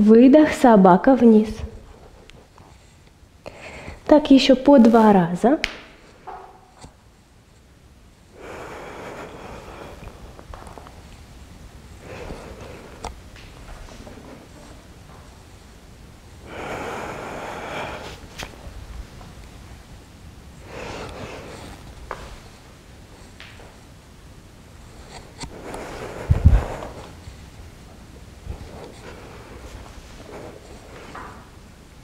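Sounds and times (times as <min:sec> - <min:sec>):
person breathing deeply: 0:08.3 - 0:10.4, 0:12.0 - 0:13.1, 0:16.4 - 0:18.3, 0:20.6 - 0:21.8, 0:25.5 - 0:27.2.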